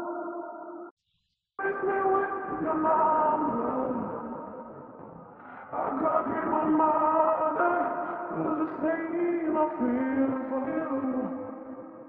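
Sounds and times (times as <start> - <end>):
muffled sung vocal with reverb: 0.0 - 12.0.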